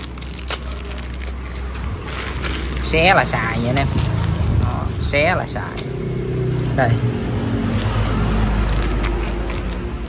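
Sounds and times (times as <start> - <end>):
plastic bag rustling: 0.0 - 10.0.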